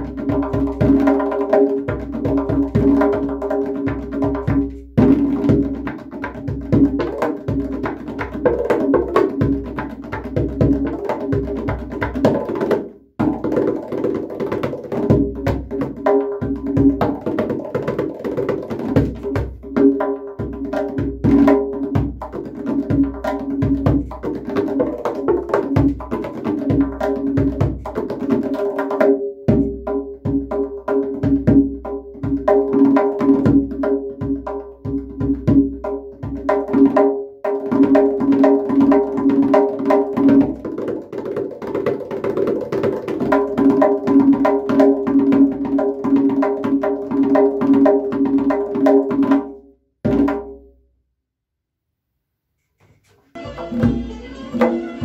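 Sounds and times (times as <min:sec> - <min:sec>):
goblet drum finger strokes: 0:52.6 - 0:55.0.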